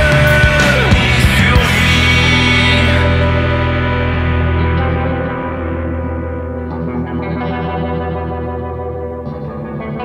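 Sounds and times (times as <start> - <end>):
electric guitar chords: 0.0 - 10.0
low bass drone: 0.0 - 10.0.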